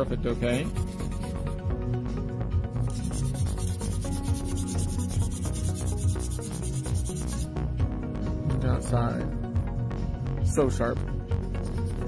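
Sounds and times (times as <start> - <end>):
background music: 0.0 - 12.0
nail file rasping: 0.5 - 1.6, 2.9 - 7.5.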